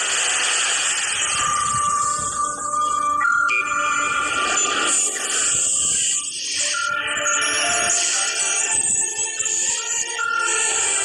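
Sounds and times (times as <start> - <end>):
loud steady hissing: 0.0 - 3.2, 4.0 - 11.0.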